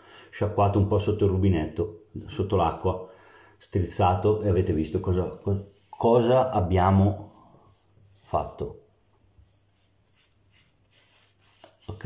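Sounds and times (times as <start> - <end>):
fingers rubbing lather on skin: 9.5 - 12.0.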